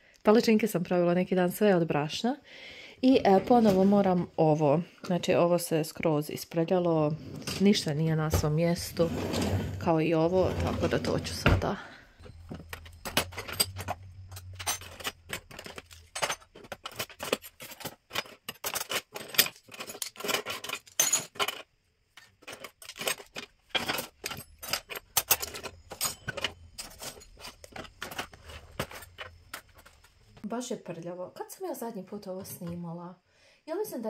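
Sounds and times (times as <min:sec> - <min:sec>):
cutlery clinking and clattering: 0:12.5 - 0:21.7, 0:22.4 - 0:29.9.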